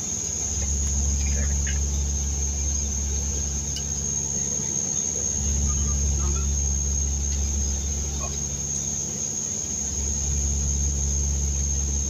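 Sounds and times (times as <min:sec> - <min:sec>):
propeller drone: 0:00.0 - 0:12.0
thin high engine whine: 0:00.0 - 0:12.0.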